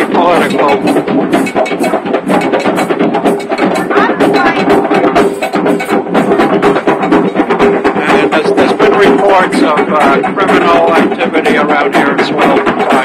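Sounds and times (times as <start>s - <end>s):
live band with fast drumming: 0.0s - 13.0s
crowd voices: 3.7s - 5.3s, 8.0s - 13.0s.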